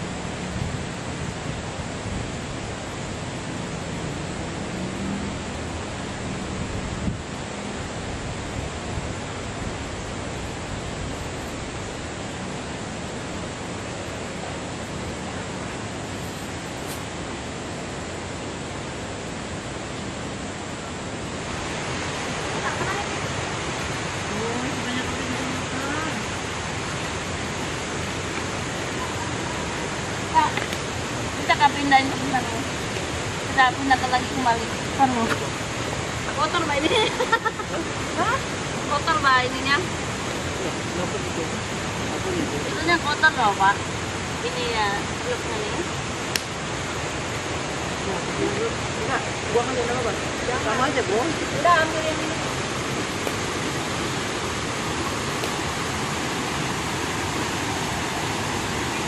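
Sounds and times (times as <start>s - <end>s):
stream water flowing: 0.0s - 59.0s.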